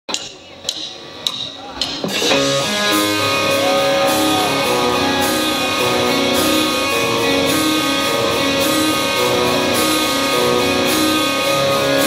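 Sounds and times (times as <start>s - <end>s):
drumstick count-in clicks: 0.1s - 2.4s.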